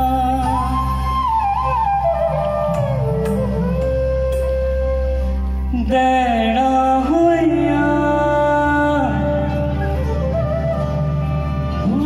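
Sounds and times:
folk melody with sliding notes: 0:00.0 - 0:12.0.

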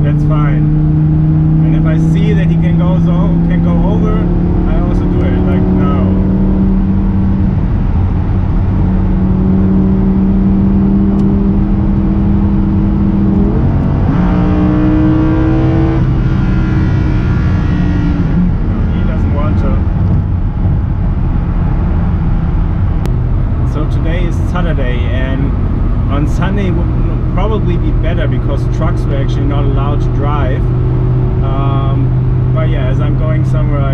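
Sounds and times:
car engine drone: 0:00.0 - 0:33.9
tyre and road noise: 0:00.0 - 0:33.9.

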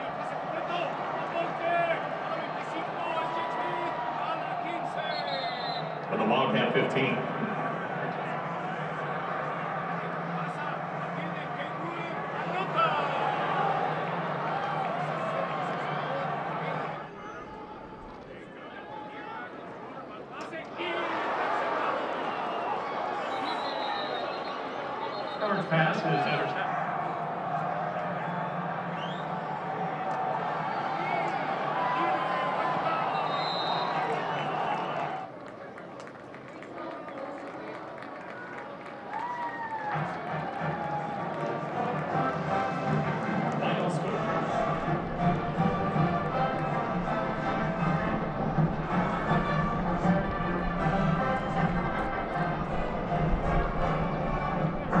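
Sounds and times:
crowd voices: 0:00.0 - 0:55.0
stadium music: 0:00.0 - 0:55.0.

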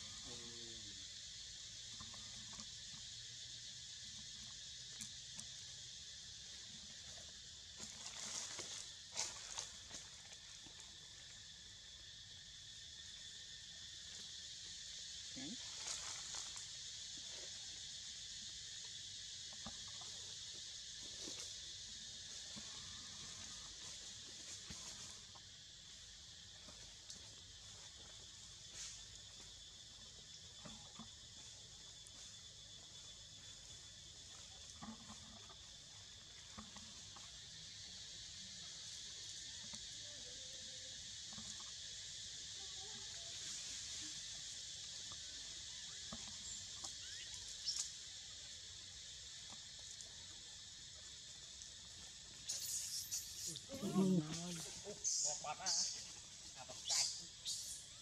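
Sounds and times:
high-pitched insect chorus: 0:00.0 - 0:58.0.

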